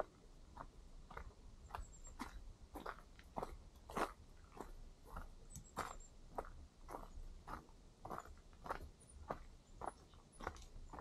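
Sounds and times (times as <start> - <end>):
footsteps crunching on dirt trail: 0.0 - 11.0.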